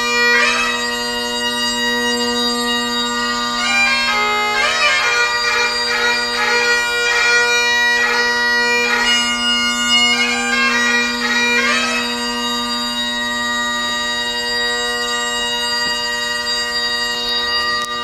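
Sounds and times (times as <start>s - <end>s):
bagpipe chanter melody: 0.0s - 18.0s
bagpipe drones: 0.0s - 18.0s.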